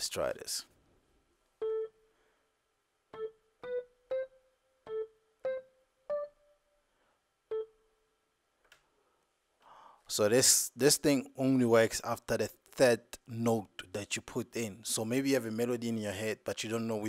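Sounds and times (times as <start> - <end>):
keyboard single notes: 1.6 - 2.1, 3.1 - 6.8, 7.5 - 8.1.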